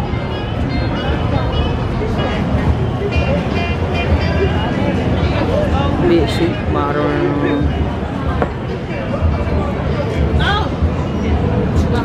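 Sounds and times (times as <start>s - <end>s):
music: 0.0s - 12.0s
people's voices: 0.0s - 12.0s
steady traffic: 0.0s - 12.0s.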